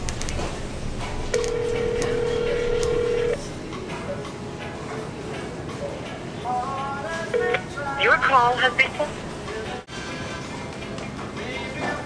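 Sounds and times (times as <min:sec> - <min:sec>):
phone ringback tone on speaker: 0:01.4 - 0:03.4.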